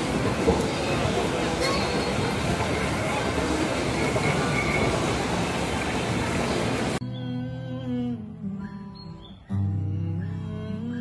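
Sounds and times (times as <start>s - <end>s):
busy shopping mall ambience: 0.0s - 11.0s.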